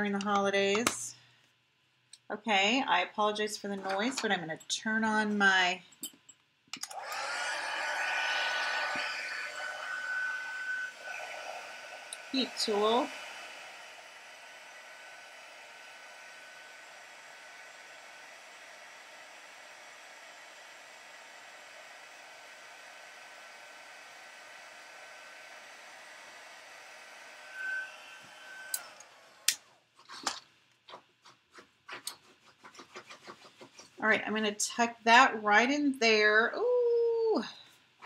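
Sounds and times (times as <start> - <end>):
heat tool blowing with whine: 6.8 - 29.7.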